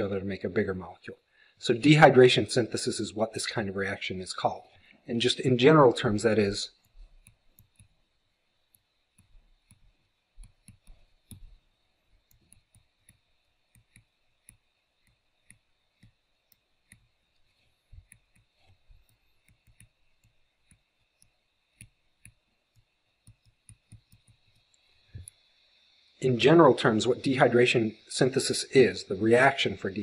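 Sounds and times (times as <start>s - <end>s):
stylus tapping on tablet: 6.9s - 8.0s, 8.8s - 25.3s.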